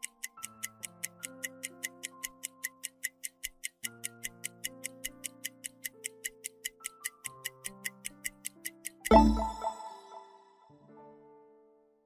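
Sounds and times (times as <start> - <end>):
soft background music: 0.0 - 12.0
countdown timer ticking fast: 9.1 - 10.6.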